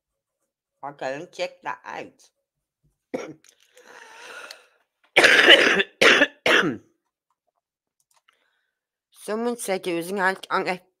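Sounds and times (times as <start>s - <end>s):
person coughing: 3.2s - 3.4s, 5.2s - 6.9s.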